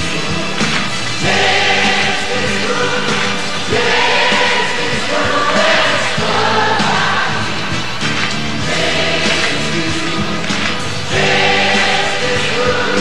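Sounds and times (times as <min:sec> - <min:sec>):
choir singing: 0:00.0 - 0:13.0
live band accompaniment: 0:00.0 - 0:13.0.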